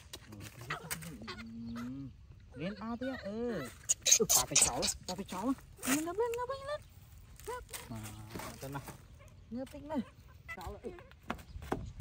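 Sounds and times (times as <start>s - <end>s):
vocal calls: 0.6s - 5.4s.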